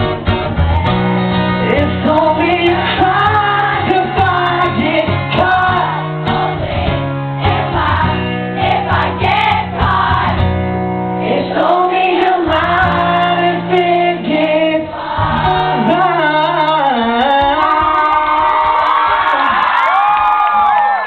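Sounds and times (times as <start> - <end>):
rock band playing: 0.0 - 11.8
singer singing: 1.6 - 6.2, 11.3 - 19.6.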